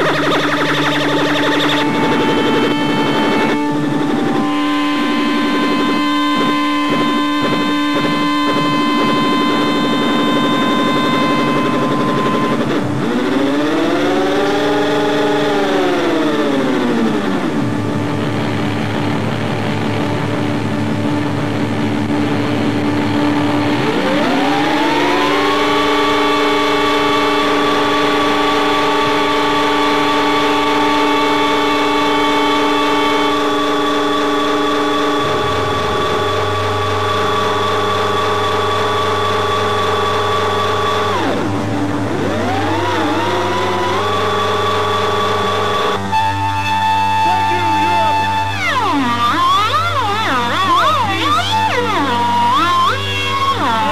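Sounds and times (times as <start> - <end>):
distorted electric guitar tones: 0.0 - 53.9
low drone: 0.0 - 53.9.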